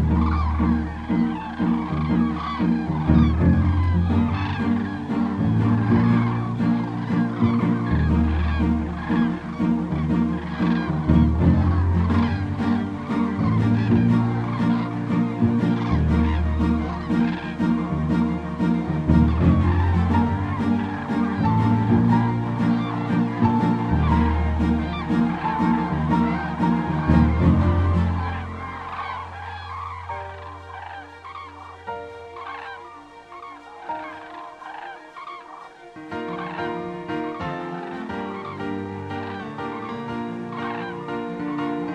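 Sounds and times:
cranes bugling: 0.0s - 41.9s
film music with strings: 0.0s - 41.9s.

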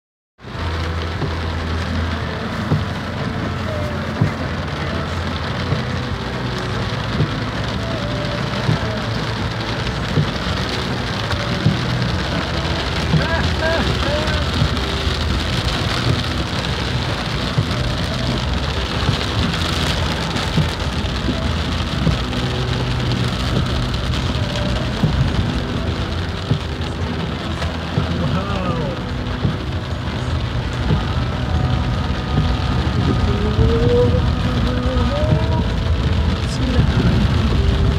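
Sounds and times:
heavy rain on car roof: 0.4s - 37.9s
moving car hum: 0.4s - 37.9s
windscreen wipers knocking: 0.5s - 37.9s.

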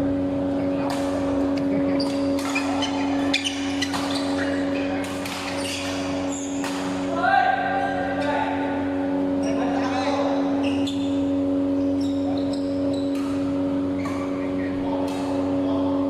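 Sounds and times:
steady hum: 0.0s - 16.0s
players' voices: 0.1s - 16.0s
rackets striking shuttlecocks: 0.8s - 7.1s, 13.0s - 14.4s, 15.0s - 15.6s.

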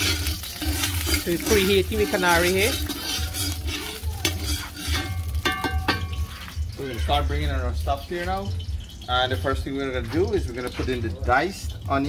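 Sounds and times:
metal spoon scraping wok: 0.0s - 7.4s
oil sizzling: 0.0s - 12.0s.

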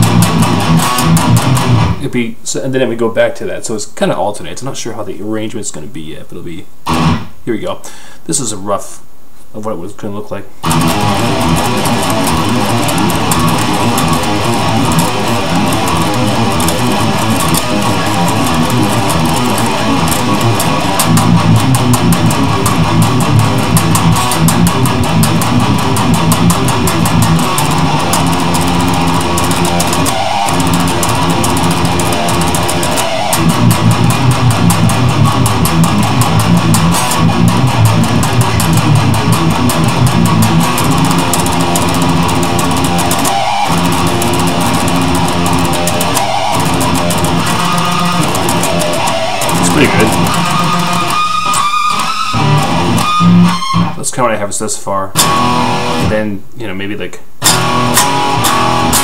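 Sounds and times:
electric guitar metal riffs: 0.0s - 3.0s, 6.4s - 8.5s, 10.6s - 56.5s, 57.4s - 59.0s.

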